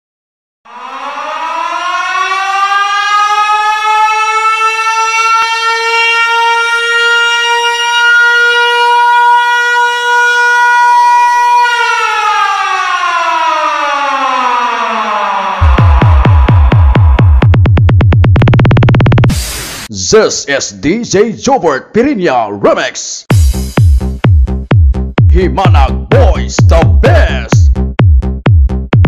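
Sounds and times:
air-raid siren wailing: 0:00.6 - 0:17.6
pulsing electronic bass beat: 0:15.6 - 0:19.9, 0:23.3 - 0:29.0.

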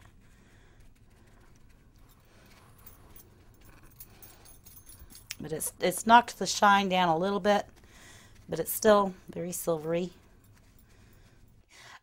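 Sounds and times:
light handling clicks and rustles: 0:00.0 - 0:11.7
low steady hum: 0:00.0 - 0:11.9.

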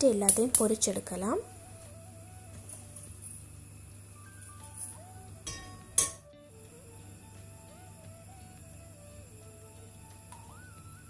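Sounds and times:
soft background music: 0:00.0 - 0:11.0
metal wok clanking on hob grate: 0:05.5 - 0:06.3.

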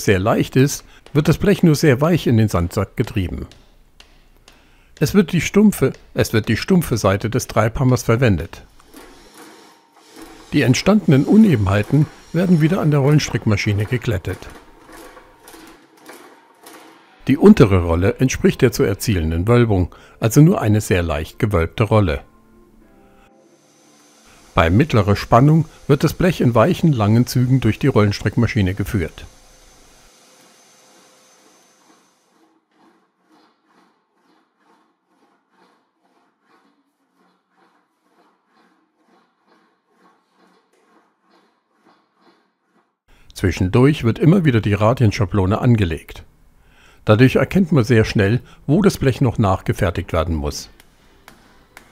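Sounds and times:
metal panel rolling through wheel: 0:08.8 - 0:17.8.

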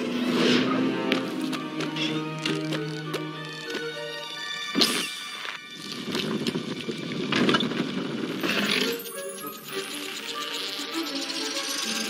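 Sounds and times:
faint orchestral music: 0:00.0 - 0:12.0.

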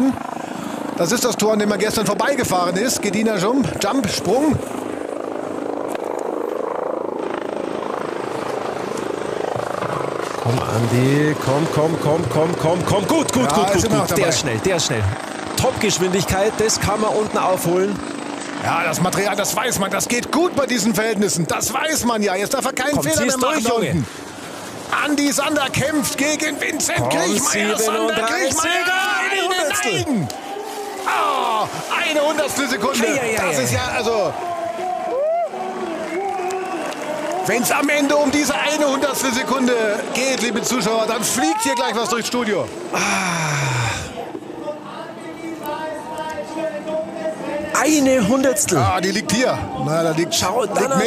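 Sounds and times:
helicopter rotor beating: 0:00.0 - 0:44.8, 0:46.4 - 0:51.0
man groaning in disappointment: 0:43.0 - 0:44.2.

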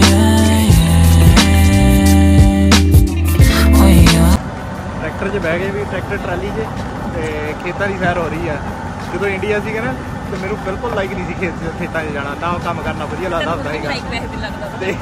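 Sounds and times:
music: 0:00.0 - 0:04.4
man talking: 0:05.0 - 0:14.2.

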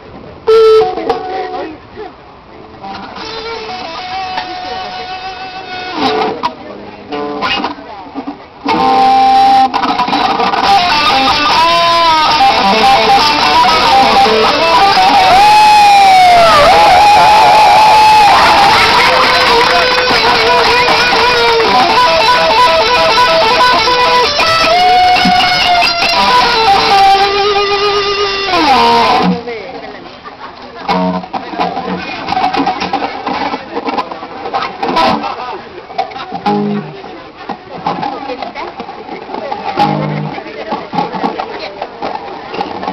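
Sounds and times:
amplified electric guitar: 0:00.0 - 0:42.9.

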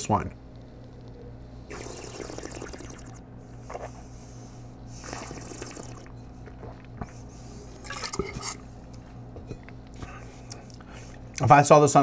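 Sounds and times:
hissing slurps of air through wine: 0:01.7 - 0:04.1, 0:05.0 - 0:06.1.

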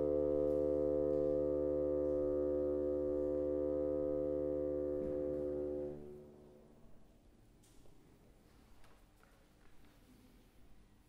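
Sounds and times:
bassoon sustained note: 0:00.0 - 0:06.7.

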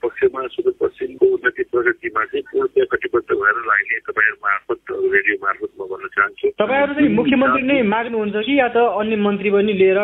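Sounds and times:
man talking over telephone: 0:00.0 - 0:07.9.

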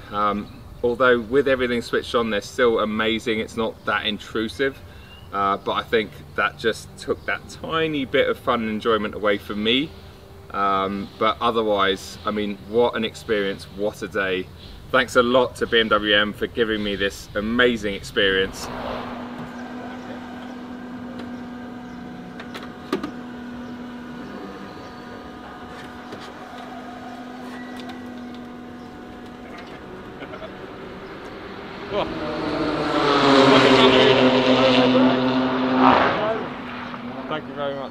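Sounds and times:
race car engine: 0:00.1 - 0:37.9
louder engine roar: 0:15.2 - 0:37.9.

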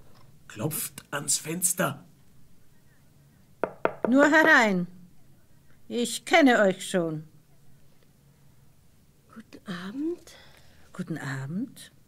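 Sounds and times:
knocks on a window: 0:03.6 - 0:04.6.

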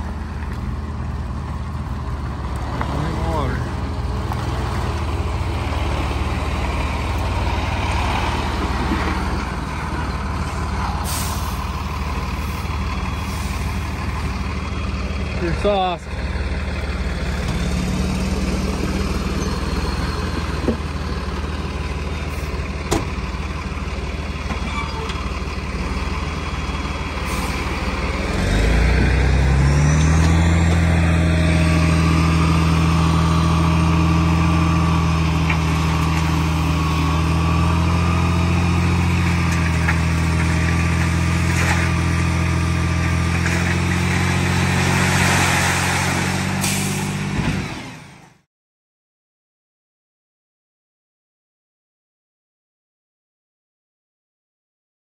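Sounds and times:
diesel truck engine: 0:00.0 - 0:48.5
dirt sliding out of truck bed: 0:06.3 - 0:13.9, 0:27.1 - 0:32.8, 0:35.4 - 0:48.0.

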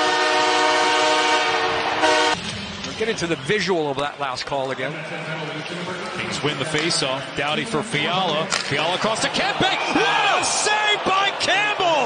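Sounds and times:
arena goal horn: 0:00.0 - 0:02.4.

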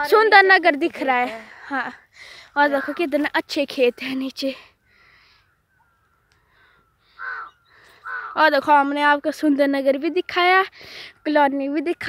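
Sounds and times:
faint bird calls: 0:02.3 - 0:09.2.

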